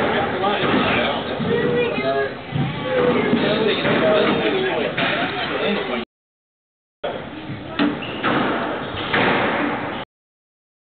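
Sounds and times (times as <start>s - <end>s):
squash ball hitting walls: 2.6s - 5.3s.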